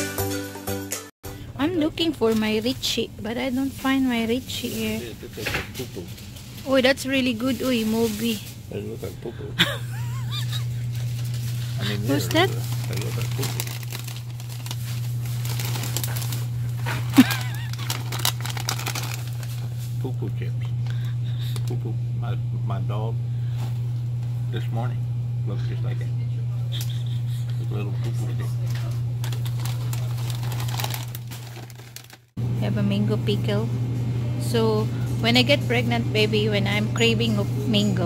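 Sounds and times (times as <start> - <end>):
steady low hum: 1.3 - 38.0
plastic snack bags crinkling: 10.3 - 19.9, 29.2 - 32.3.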